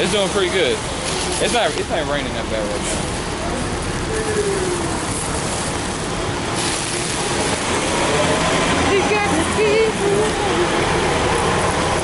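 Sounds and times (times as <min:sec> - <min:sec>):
rain on umbrellas and street: 0:00.0 - 0:12.0
traffic noise: 0:00.0 - 0:12.0
faint voice: 0:03.4 - 0:05.2.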